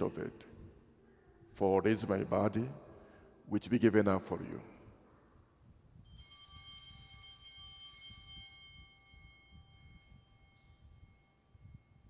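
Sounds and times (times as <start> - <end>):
altar bell ringing: 6.0 - 12.0.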